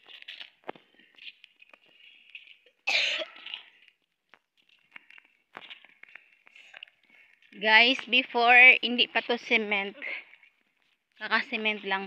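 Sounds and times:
person coughing: 2.9s - 3.5s.

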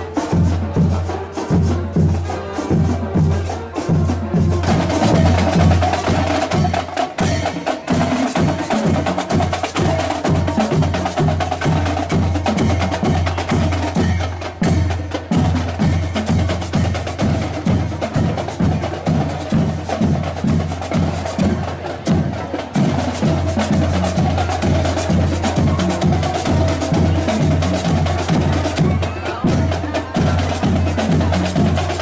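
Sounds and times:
drums beating steadily: 0.0s - 32.0s
marching band playing: 0.0s - 32.0s.

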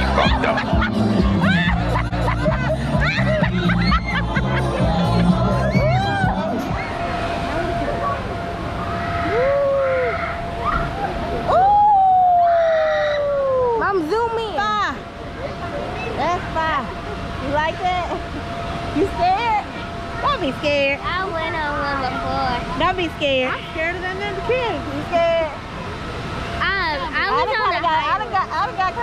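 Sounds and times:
music: 0.0s - 6.8s
crowd voices and shouts: 0.0s - 17.4s.

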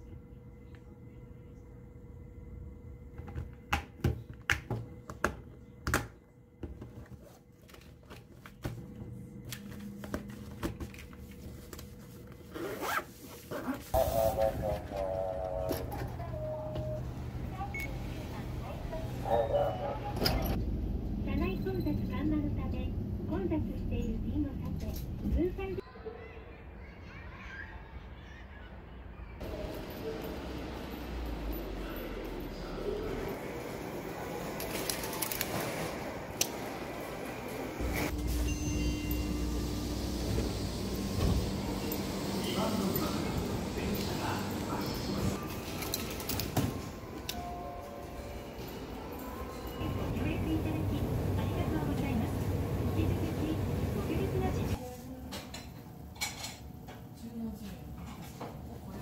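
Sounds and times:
zipper pulled shut: 12.5s - 13.8s
train rumbling: 13.9s - 25.8s, 28.1s - 54.8s.

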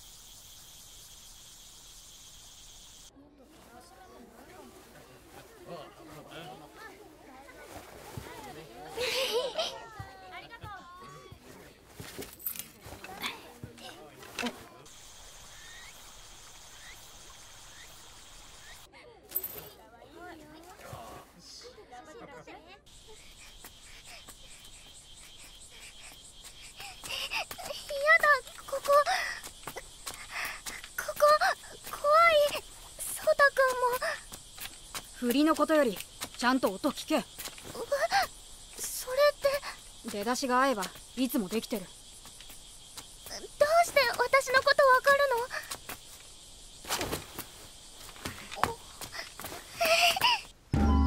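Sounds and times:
high insect chorus: 0.0s - 21.7s, 22.9s - 50.6s
children and adults chattering: 3.1s - 15.0s, 18.8s - 24.8s
child speaking: 27.1s - 29.4s, 31.0s - 34.2s, 37.7s - 41.8s, 43.3s - 45.7s.

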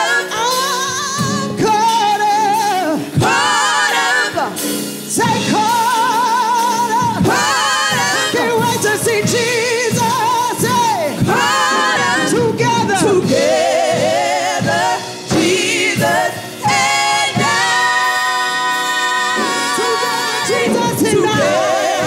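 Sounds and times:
live band with drums: 0.0s - 22.0s
women singing gospel: 0.0s - 22.0s.

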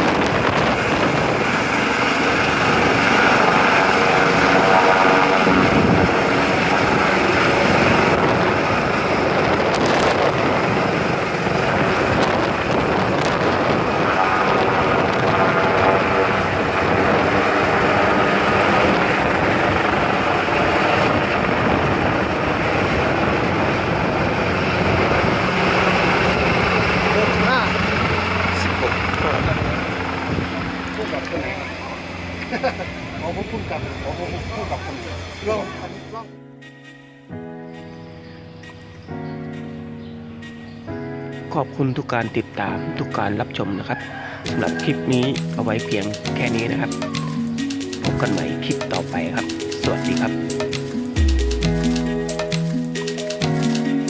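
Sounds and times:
helicopter rotor beating: 0.0s - 36.7s, 44.4s - 54.0s
helicopter turbine whine: 0.0s - 54.0s.

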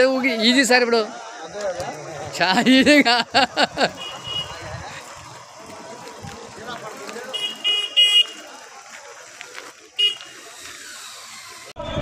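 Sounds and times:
outdoor background noise: 0.0s - 12.0s
vehicle horn toot: 3.9s - 4.8s, 7.2s - 8.6s, 10.0s - 10.5s.

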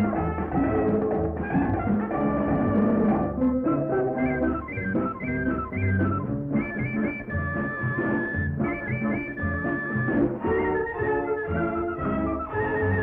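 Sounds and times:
instrumental film song melody: 0.0s - 13.0s.

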